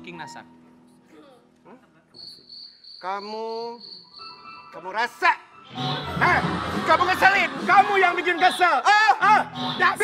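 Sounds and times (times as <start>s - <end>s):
crickets chirping: 2.1s - 4.8s.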